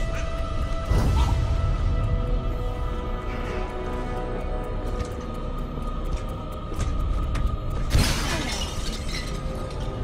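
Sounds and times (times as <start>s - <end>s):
dark orchestral film score: 0.0s - 10.0s.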